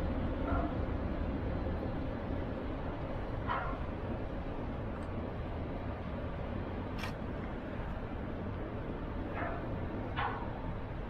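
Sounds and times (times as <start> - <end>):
low outdoor rumble: 0.0 - 11.0
dog barking: 0.4 - 0.7.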